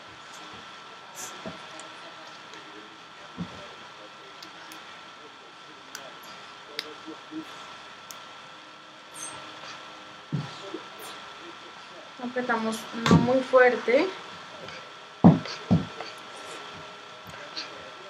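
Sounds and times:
thin high whine: 0:00.0 - 0:18.0.

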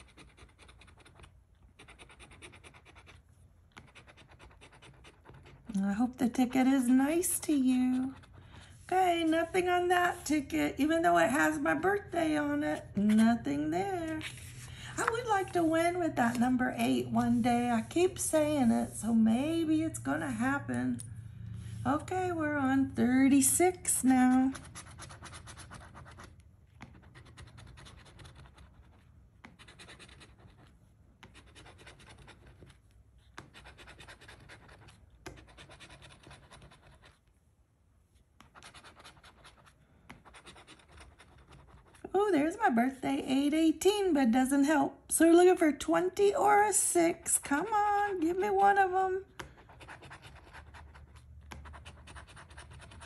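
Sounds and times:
coin scratching lottery ticket: 0:00.0 - 0:03.2, 0:49.6 - 0:53.0.

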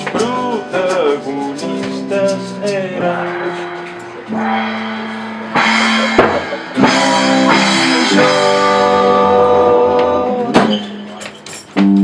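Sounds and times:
acoustic guitar: 0:00.0 - 0:12.0
bass guitar: 0:00.0 - 0:12.0
mallet percussion: 0:03.0 - 0:08.7.

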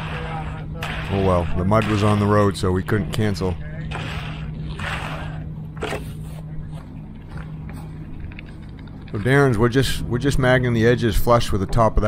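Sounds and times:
tool scraping wet concrete: 0:00.0 - 0:06.4.

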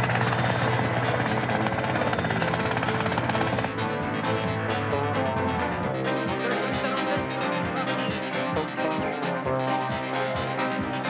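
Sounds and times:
helicopter rotor chop: 0:00.0 - 0:11.0
orchestral film music: 0:00.0 - 0:11.0.

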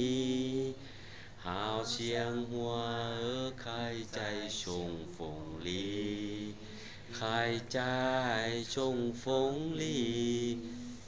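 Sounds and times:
person singing unaccompanied: 0:01.5 - 0:11.0.

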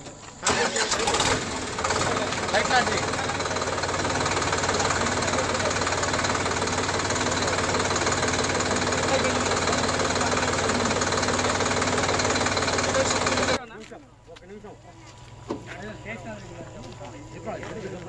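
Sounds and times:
people talking: 0:00.4 - 0:06.6, 0:07.2 - 0:11.6, 0:12.5 - 0:18.0
diesel engine idling: 0:00.4 - 0:18.0.

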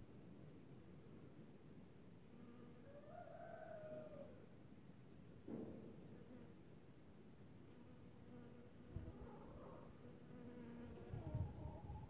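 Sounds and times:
honeybee buzzing: 0:10.1 - 0:11.4.

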